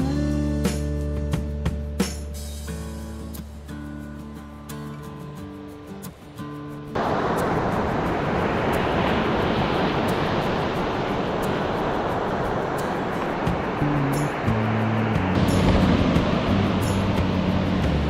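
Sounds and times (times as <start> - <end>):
background music with low notes: 0.0 - 6.9, 13.0 - 18.0
waves breaking on sand: 6.8 - 18.0.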